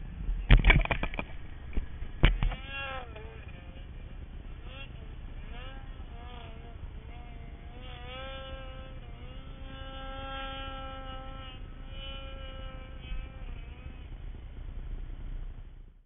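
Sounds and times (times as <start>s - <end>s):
snowmobile engine whine: 0.0s - 16.0s.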